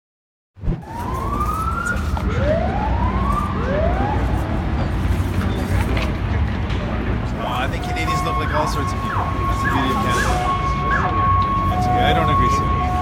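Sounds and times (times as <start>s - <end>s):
low street rumble: 0.6s - 13.0s.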